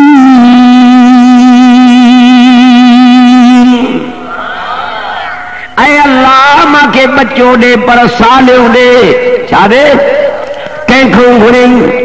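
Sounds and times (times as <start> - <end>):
man singing long note with vibrato: 0.0 - 4.4.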